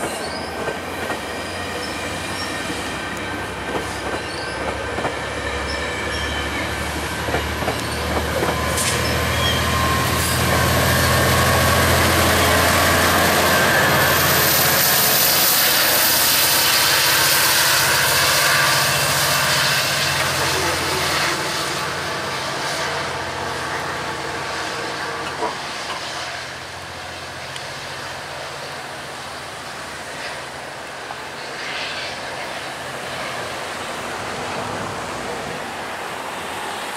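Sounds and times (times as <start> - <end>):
diesel locomotive engine drone: 0.0 - 36.9
train wheels on rails: 0.0 - 36.9.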